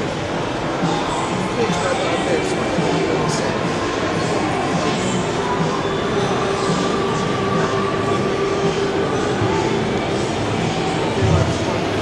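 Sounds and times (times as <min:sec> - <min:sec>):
din of busy hall: 0:00.0 - 0:12.0.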